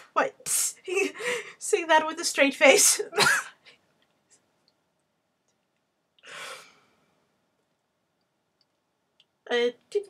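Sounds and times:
breathy sigh: 0:06.2 - 0:07.0.

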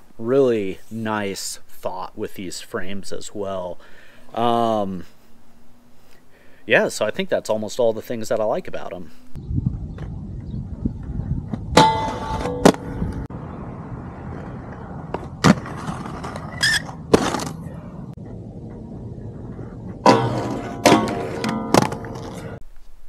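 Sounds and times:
inline skate wheels rolling: 0:11.6 - 0:22.6
skate landing hits and grinds: 0:11.7 - 0:13.2, 0:15.1 - 0:17.7, 0:20.0 - 0:22.6.

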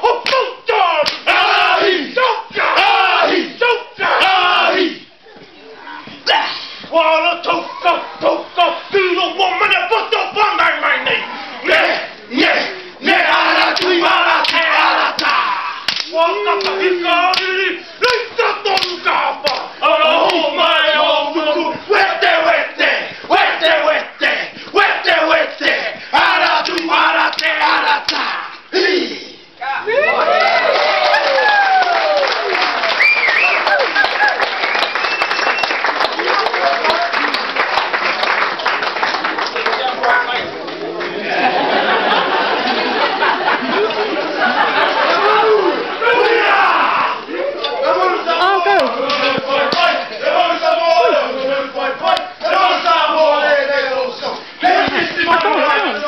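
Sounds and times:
men chanting in unison: 0:00.0 - 0:05.1, 0:11.2 - 0:29.4, 0:45.0 - 0:56.0
sharp hand slaps: 0:00.2 - 0:01.3, 0:13.7 - 0:17.6, 0:18.8 - 0:20.4, 0:26.6 - 0:28.2
crowd voices: 0:01.3 - 0:31.2, 0:39.2 - 0:56.0.

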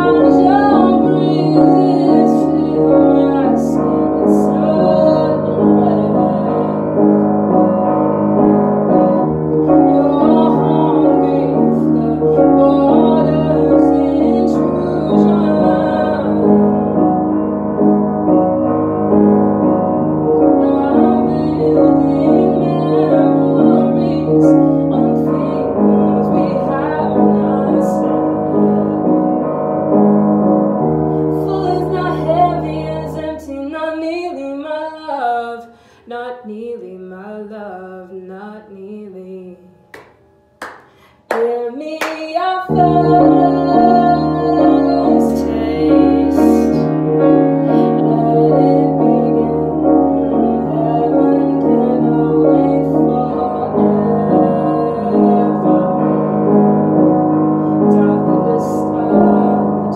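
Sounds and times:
woman singing unaccompanied: 0:00.0 - 0:17.4, 0:20.3 - 0:30.1, 0:31.2 - 0:39.8, 0:41.3 - 0:59.9
piano chords: 0:00.0 - 0:59.9.

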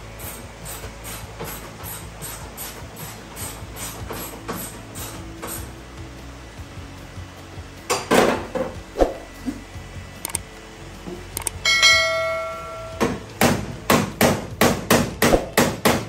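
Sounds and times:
bell-like chime: 0:11.6 - 0:13.0
hammer on sheet metal: 0:11.7 - 0:16.0.

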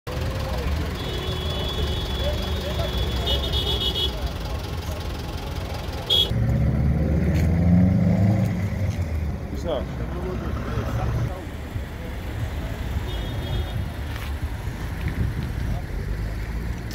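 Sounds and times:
close engine hum: 0:00.1 - 0:13.0
vehicle engines idling: 0:00.1 - 0:16.9.

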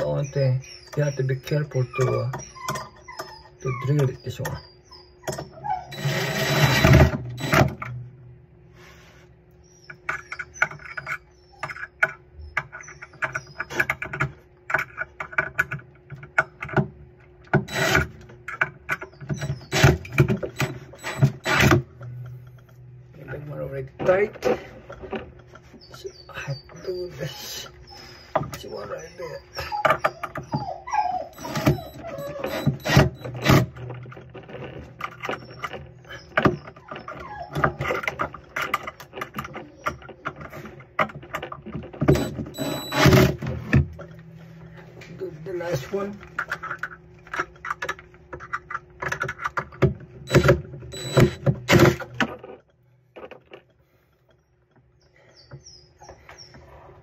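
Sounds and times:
cordless drill driving screws: 0:05.9 - 0:07.7, 0:17.7 - 0:18.0, 0:31.4 - 0:33.6, 0:42.1 - 0:43.4.

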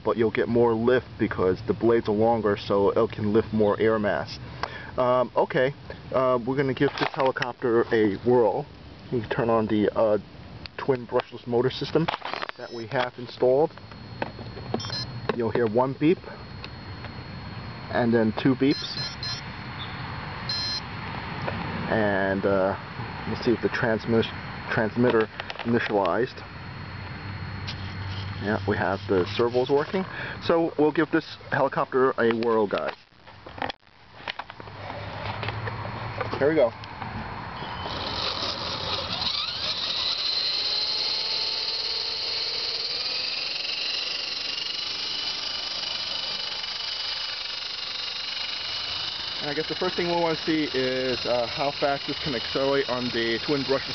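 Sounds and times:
rc helicopter motors whining: 0:09.9 - 0:20.9, 0:23.2 - 0:31.8, 0:37.4 - 0:53.9
longer beep: 0:12.6 - 0:20.9
short high beeps: 0:12.6 - 0:20.9.

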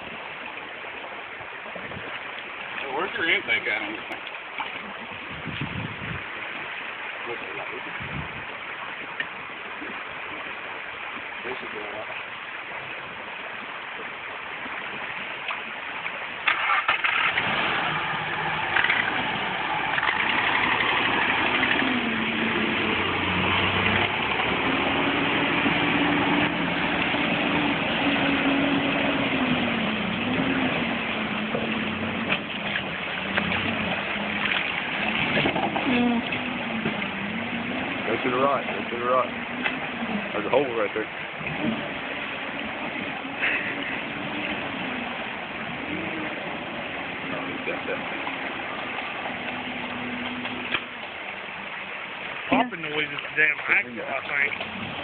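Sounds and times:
car engine cranking: 0:16.4 - 0:51.2
car engine revving: 0:16.5 - 0:51.0.

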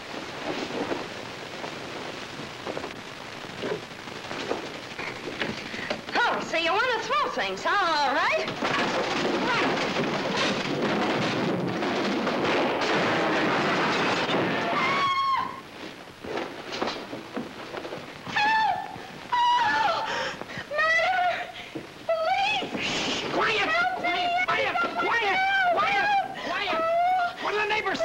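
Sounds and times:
wooden boards and furniture crashing: 0:00.0 - 0:06.5, 0:08.2 - 0:19.2
person wailing comically: 0:18.3 - 0:20.1, 0:20.7 - 0:22.8, 0:23.6 - 0:28.0.

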